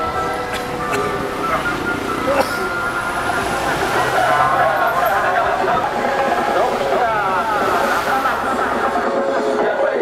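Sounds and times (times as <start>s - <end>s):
street traffic: 0.0s - 10.0s
voice over roof loudspeakers: 3.8s - 10.0s.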